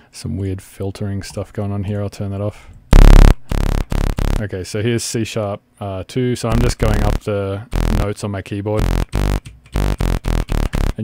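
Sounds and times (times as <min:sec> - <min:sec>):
short synth notes stepping up: 0:03.0 - 0:04.4, 0:06.5 - 0:08.1, 0:08.8 - 0:11.0.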